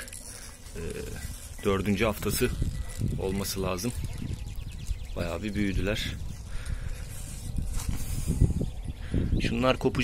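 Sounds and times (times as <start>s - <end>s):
rustling and handling noise: 0.0s - 8.6s.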